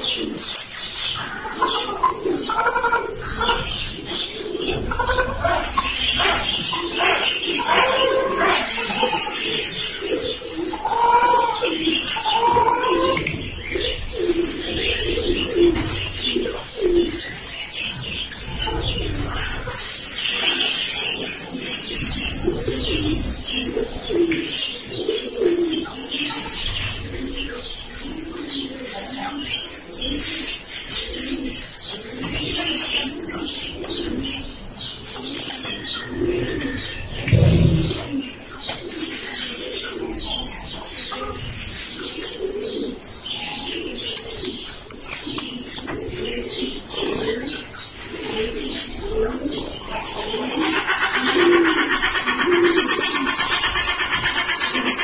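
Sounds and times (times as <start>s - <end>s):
raccoons calling: 1.1s - 41.6s, 42.2s - 55.0s.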